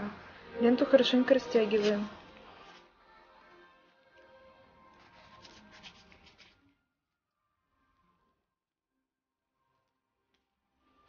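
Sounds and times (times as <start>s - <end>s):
faint background music: 0.0s - 11.0s
tape rubbing scratchily: 1.6s - 2.9s, 4.8s - 6.6s.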